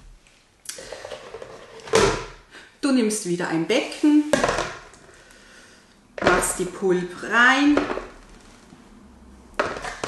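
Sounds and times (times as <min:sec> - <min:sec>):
plastic basin knocking on table: 0:09.6 - 0:10.0.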